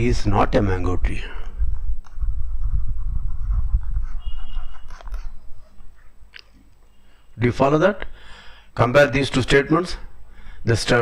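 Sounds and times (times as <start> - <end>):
breath blowing on a microphone: 1.2 - 6.1.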